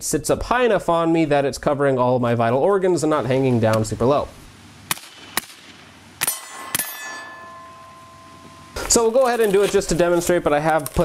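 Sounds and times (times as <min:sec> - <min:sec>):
rifle shots: 0:04.9 - 0:07.0
steel target ringing clang: 0:06.2 - 0:08.8.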